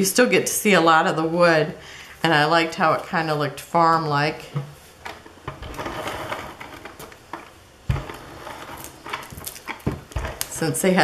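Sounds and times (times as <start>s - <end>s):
plastic container being moved: 4.6s - 10.6s.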